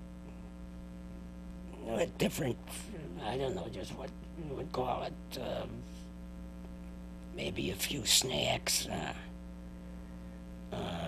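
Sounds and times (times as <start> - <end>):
electrical hum: 0.0 - 11.0
man speaking: 1.7 - 6.0, 7.4 - 9.3, 10.7 - 11.0.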